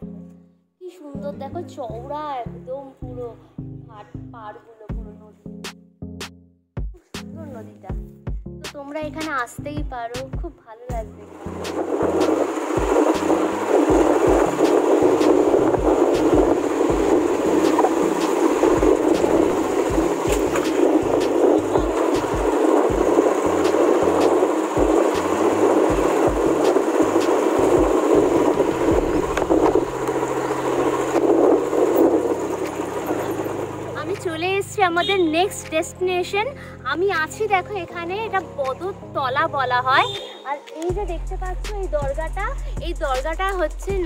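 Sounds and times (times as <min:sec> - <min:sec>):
woman speaking: 0:00.8 - 0:05.4, 0:07.0 - 0:11.4, 0:34.0 - 0:44.0
motorbike road noise: 0:10.9 - 0:44.0
rushing wind: 0:11.0 - 0:34.2.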